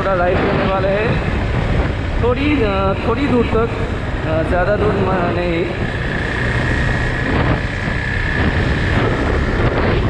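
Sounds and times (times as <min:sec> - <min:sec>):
wind rushing over microphone: 0:00.0 - 0:10.0
motorcycle engine running: 0:00.6 - 0:10.0.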